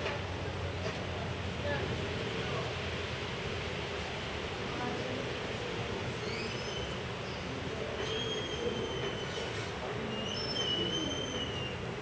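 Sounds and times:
murmur of hall ambience: 0.0s - 12.0s.

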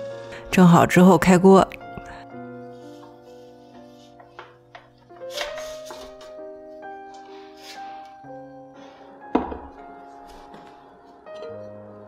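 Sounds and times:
soft background music: 0.0s - 12.0s
cloth rustling: 2.7s - 8.0s.

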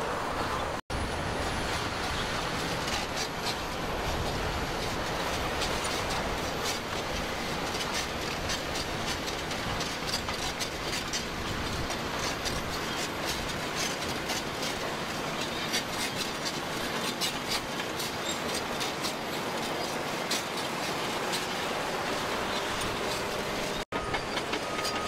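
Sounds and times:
steel tracks clanking: 0.0s - 25.0s
bulldozer engine rumble: 0.1s - 25.0s.

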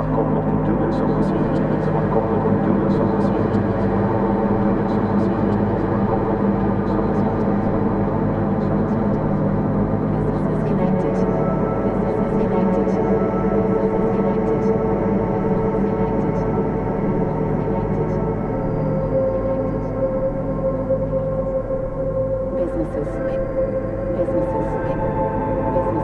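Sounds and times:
bowed noisebox drone: 0.0s - 26.0s.

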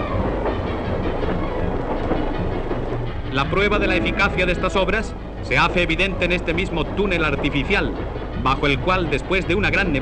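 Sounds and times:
train wheels clattering on rails: 0.0s - 10.0s.

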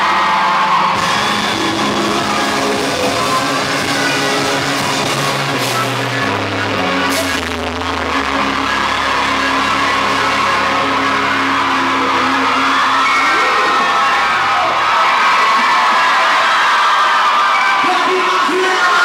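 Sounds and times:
crowd cheering and screaming: 0.0s - 19.0s
rock band chord ringing: 1.0s - 14.5s.

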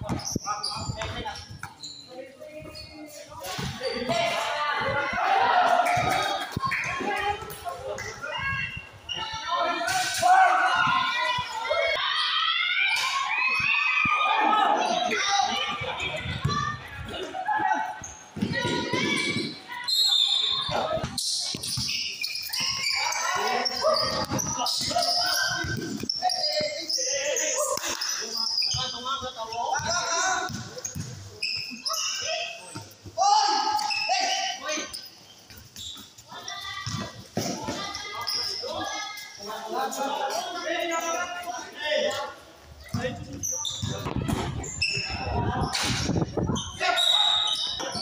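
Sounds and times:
players calling out: 1.8s - 48.0s.

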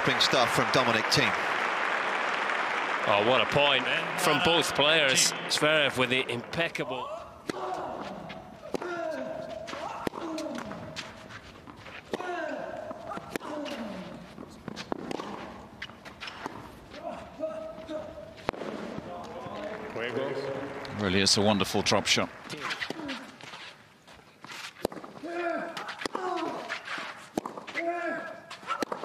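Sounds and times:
players grunting: 3.1s - 10.9s, 12.1s - 14.3s
tennis racquet hitting ball: 7.4s - 16.7s, 24.8s - 29.0s.

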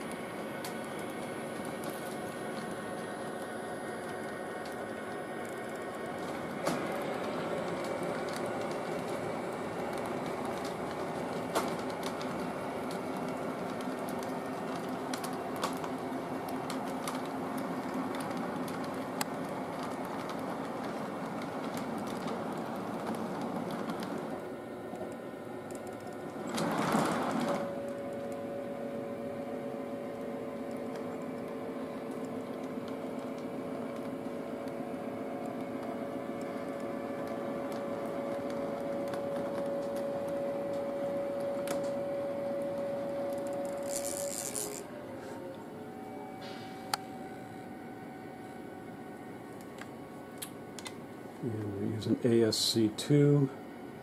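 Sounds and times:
model train hum and rattle: 0.0s - 54.0s.

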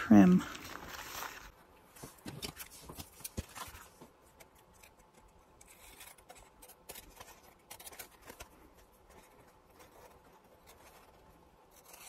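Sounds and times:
paper rustling: 0.0s - 12.0s
scissors snipping paper: 2.4s - 12.0s.

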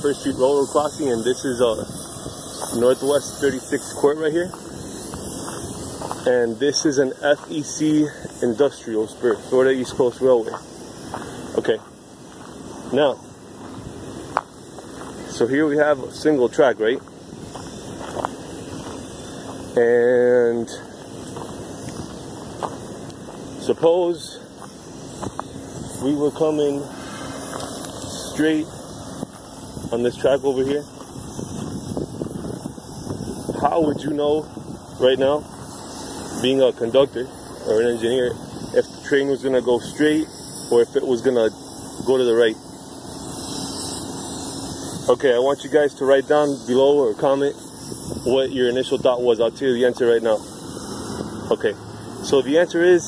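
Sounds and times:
wind on microphone: 0.0s - 8.4s, 27.4s - 39.0s, 47.8s - 49.3s
faint steady hum: 0.0s - 53.0s.

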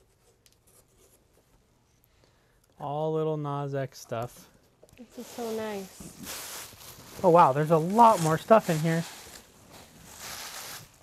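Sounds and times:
cloth rustling: 5.0s - 11.0s.

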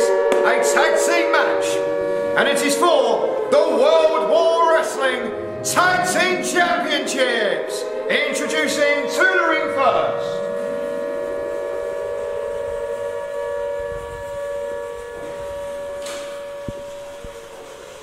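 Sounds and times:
siren-like wail: 0.0s - 18.0s
rising tone: 1.8s - 17.8s.

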